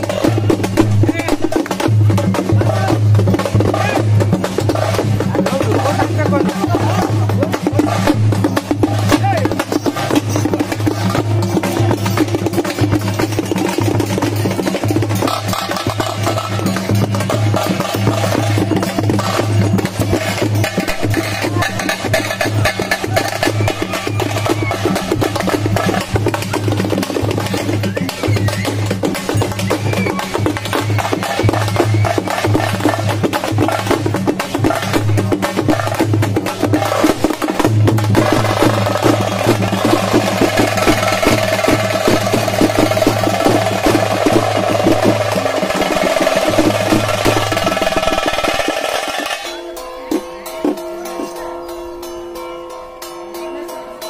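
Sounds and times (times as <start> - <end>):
fast dense drumming: 0.0 - 49.6.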